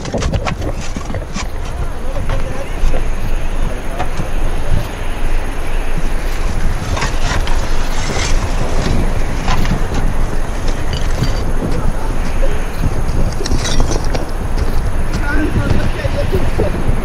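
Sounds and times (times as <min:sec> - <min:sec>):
steady low rumble: 0:00.0 - 0:17.0
clay roof tiles clinking: 0:06.0 - 0:16.6.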